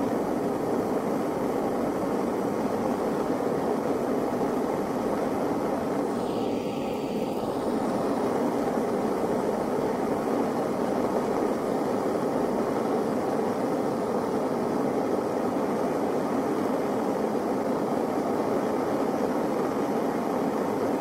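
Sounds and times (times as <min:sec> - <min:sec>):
blowtorch flame hissing: 0:00.0 - 0:21.0.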